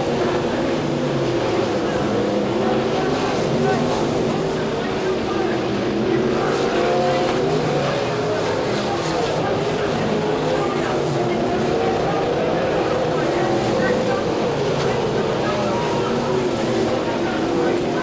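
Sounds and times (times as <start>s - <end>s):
racing car engines: 0.0s - 18.0s.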